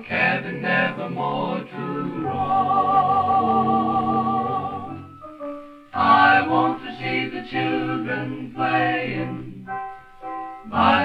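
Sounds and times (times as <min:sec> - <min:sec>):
song with singing and instruments: 0:00.0 - 0:11.0.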